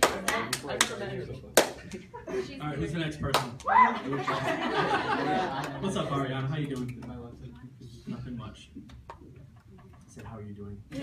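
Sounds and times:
audience hand claps: 0:00.0 - 0:01.0.

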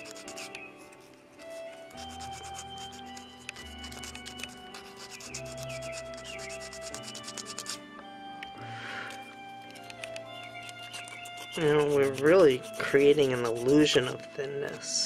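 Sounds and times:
sandpaper rubbing on wood: 0:00.0 - 0:00.6, 0:01.9 - 0:07.8, 0:10.7 - 0:14.3
background music with held notes: 0:00.0 - 0:15.0.

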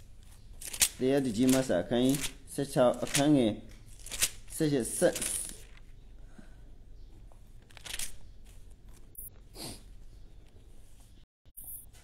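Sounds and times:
quiet room hum: 0:00.0 - 0:12.0
man speaking: 0:01.0 - 0:03.7, 0:04.5 - 0:05.7.

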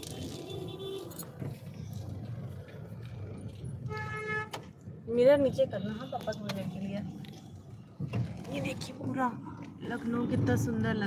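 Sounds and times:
car rumbling in traffic: 0:00.0 - 0:11.0
car horn honk: 0:00.4 - 0:01.2, 0:03.8 - 0:04.7.

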